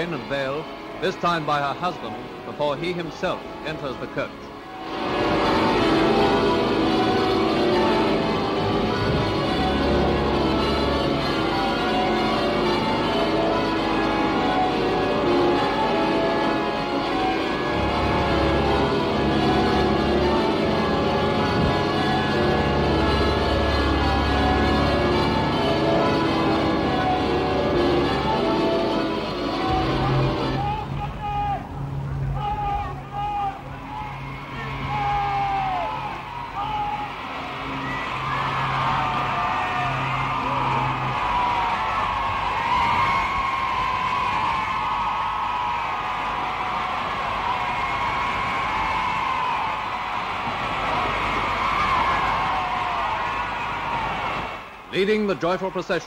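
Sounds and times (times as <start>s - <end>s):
sustained music chords: 0.0s - 48.7s
large crowd cheering: 0.0s - 56.0s.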